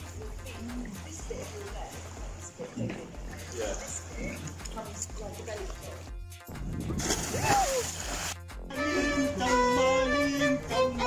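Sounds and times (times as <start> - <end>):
water splashing: 0.0 - 8.7
violin bowed long notes: 8.7 - 11.0.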